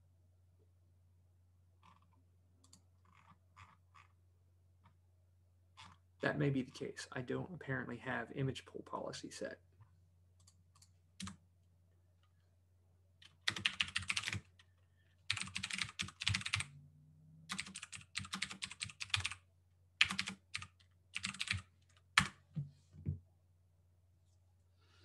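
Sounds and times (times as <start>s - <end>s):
typing on computer keyboard: 13.2s - 14.7s, 15.3s - 16.7s, 17.5s - 19.4s, 20.0s - 22.4s.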